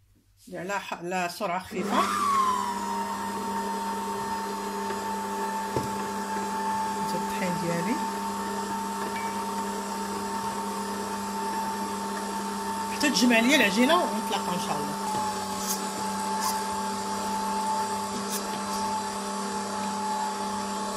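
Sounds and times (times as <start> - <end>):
stand mixer motor whine: 1.8 - 20.9.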